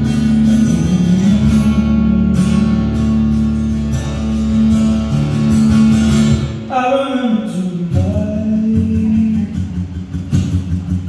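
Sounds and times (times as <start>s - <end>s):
man singing: 0.0s - 3.1s, 6.5s - 10.0s
acoustic guitar: 0.0s - 11.0s.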